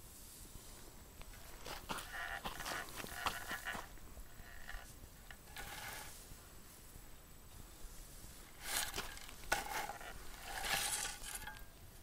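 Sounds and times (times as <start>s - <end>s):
dry soil rustling scrape: 0.0s - 11.8s.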